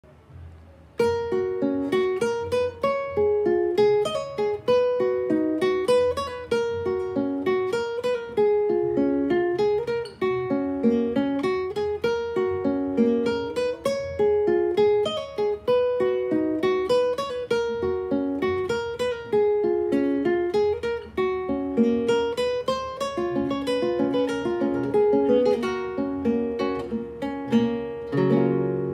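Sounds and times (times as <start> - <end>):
acoustic guitar picking melody: 0.1 - 28.9.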